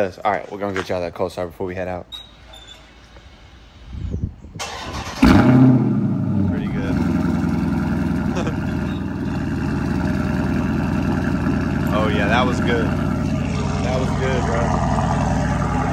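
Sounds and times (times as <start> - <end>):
car engine revving and idling: 5.1 - 15.9.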